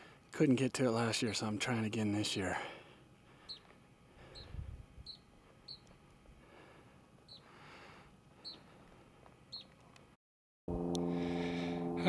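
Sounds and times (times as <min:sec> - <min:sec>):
small bird chirping: 0:03.4 - 0:06.0, 0:07.2 - 0:07.5, 0:08.4 - 0:08.8, 0:09.5 - 0:09.8
low rumble on microphone: 0:04.2 - 0:05.2.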